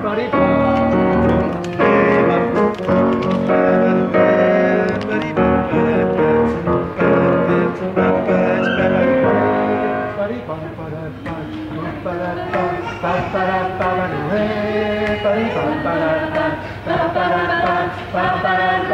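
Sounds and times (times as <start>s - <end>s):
grand piano playing chords: 0.0s - 10.8s.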